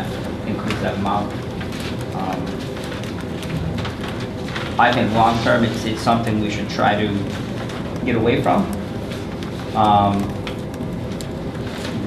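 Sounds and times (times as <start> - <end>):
person speaking: 0.0 - 1.5, 2.1 - 2.8, 4.6 - 7.4, 8.0 - 8.9, 9.7 - 10.5
paper rustling: 0.0 - 12.0.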